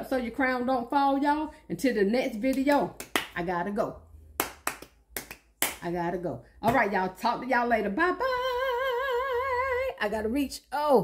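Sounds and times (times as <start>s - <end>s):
sharp hand claps: 2.5s - 3.4s, 4.4s - 5.9s.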